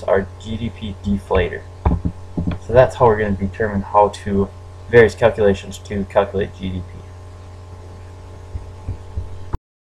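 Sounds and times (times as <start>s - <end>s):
low electrical hum: 0.0s - 9.6s
soft low thumps: 1.2s - 2.9s, 7.9s - 9.6s.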